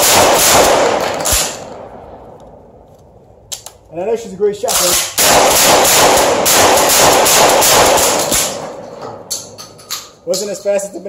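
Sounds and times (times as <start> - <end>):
shotgun blasts: 0.0 - 2.2, 4.7 - 9.3.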